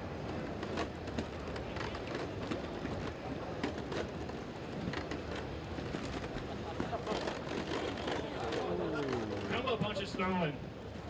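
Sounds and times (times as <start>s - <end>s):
crowd hubbub: 5.8s - 10.4s.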